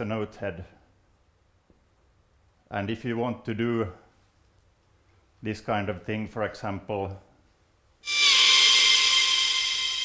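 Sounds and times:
high synthesized note: 8.0 - 10.0.

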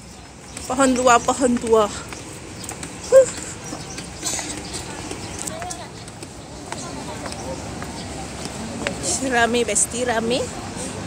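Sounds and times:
footsteps on paved ramp: 0.0 - 10.4
faint voices of passers-by: 0.0 - 11.0.

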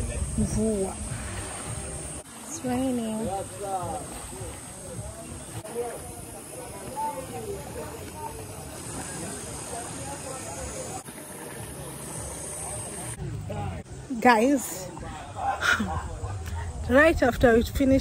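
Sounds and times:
wind rumble on microphone: 0.0 - 2.2
faint voices talking: 0.0 - 18.0.

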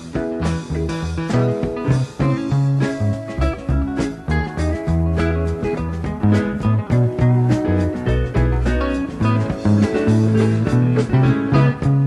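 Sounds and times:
electric guitar: 0.0 - 12.0
steady drums: 0.0 - 12.0
walking bass line: 0.0 - 12.0.

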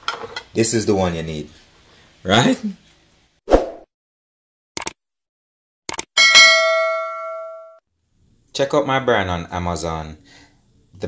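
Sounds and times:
notification bell ding: 6.2 - 7.8.

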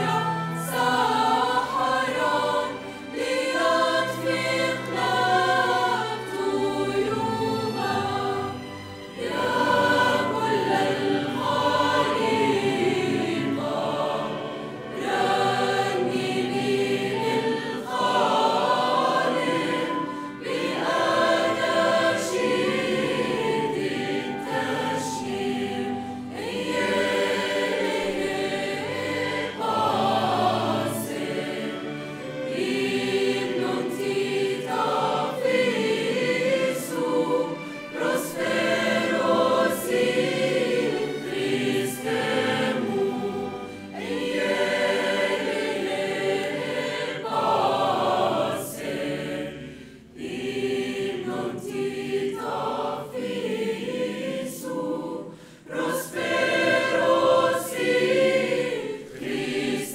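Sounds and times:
small orchestra with violins: 0.0 - 59.8
mixed choir singing a hymn: 0.0 - 59.9.

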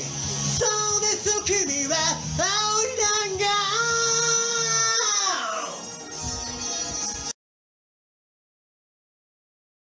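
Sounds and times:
rock backing track: 0.0 - 7.3
man singing a high held note: 0.6 - 5.9.

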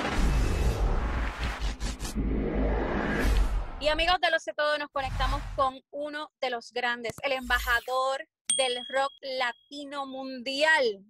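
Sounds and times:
whooshing sweeps: 0.0 - 4.0.

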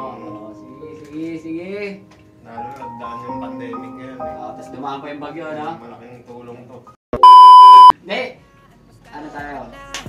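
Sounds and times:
high test-tone beep: 7.2 - 7.9.

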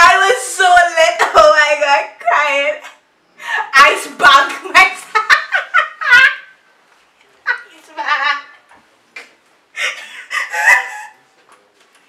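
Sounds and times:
woman laughing: 4.9 - 6.6, 7.5 - 8.6, 9.8 - 11.2.

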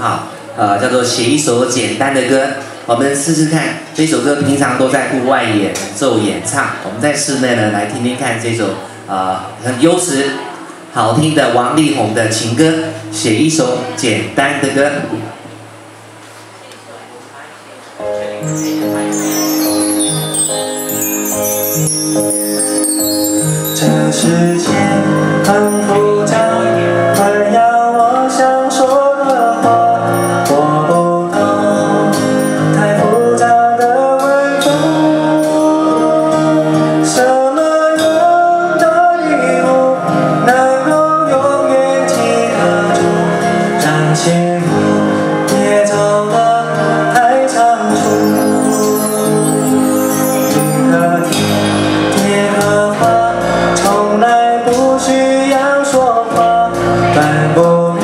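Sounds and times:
keyboard chords: 17.9 - 58.0
gliding lead melody: 18.2 - 26.9, 46.7 - 53.9
man singing slow song: 18.6 - 58.0.

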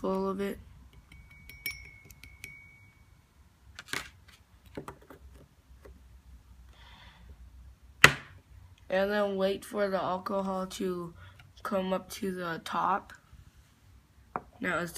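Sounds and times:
metal spoon tapping porcelain dish: 1.0 - 2.7.

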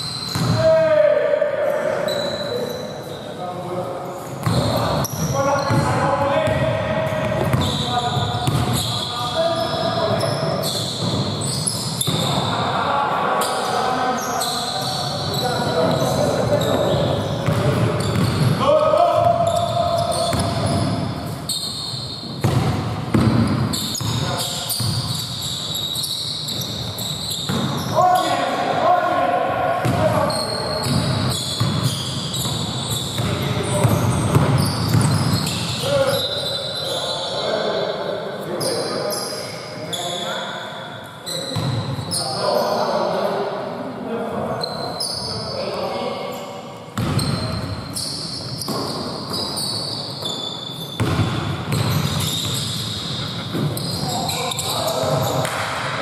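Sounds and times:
basketball bouncing on hardwood floor: 8.4 - 8.8, 17.4 - 18.4, 51.0 - 52.2.

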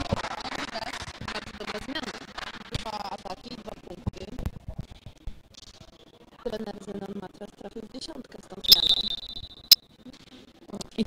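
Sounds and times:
referee's whistle blast: 8.7 - 9.8.

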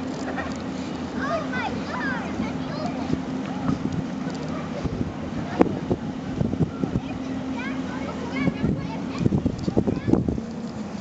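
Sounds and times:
ship engine drone: 0.0 - 11.0.

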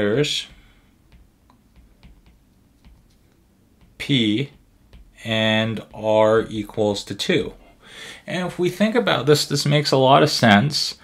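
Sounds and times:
stylus tapping on glass screen: 0.4 - 6.0.

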